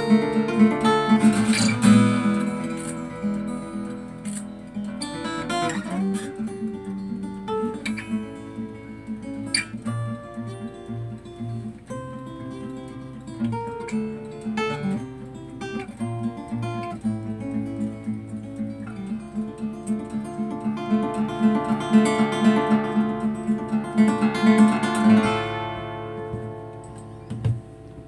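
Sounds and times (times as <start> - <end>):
acoustic guitar picked melody: 0.0 - 28.0.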